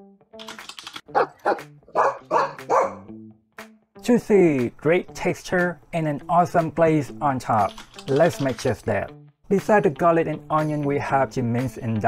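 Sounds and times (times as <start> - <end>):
dog barking: 1.1 - 3.1
faint background music: 4.0 - 12.0.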